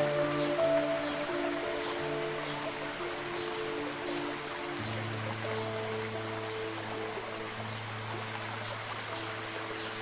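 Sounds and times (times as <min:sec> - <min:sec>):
soft music with low held notes: 0:00.0 - 0:10.0
waterfall rushing: 0:00.0 - 0:10.0.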